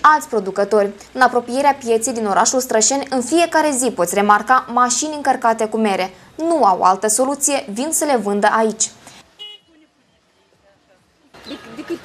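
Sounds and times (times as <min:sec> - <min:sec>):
faint car horn toot: 0:09.4 - 0:10.6.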